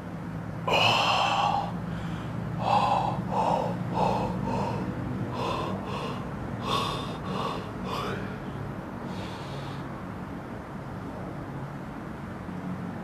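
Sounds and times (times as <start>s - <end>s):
person gasping for breath: 0.7s - 9.9s.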